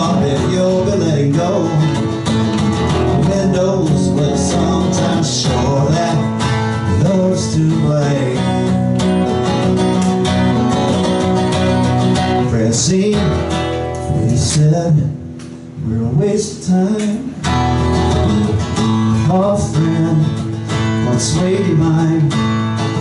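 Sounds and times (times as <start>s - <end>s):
acoustic guitar strummed and picked: 0.0s - 23.0s.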